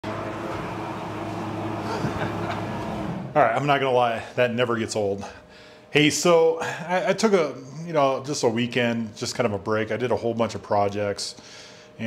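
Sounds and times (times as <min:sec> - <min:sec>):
cnc router running: 0:00.0 - 0:03.4.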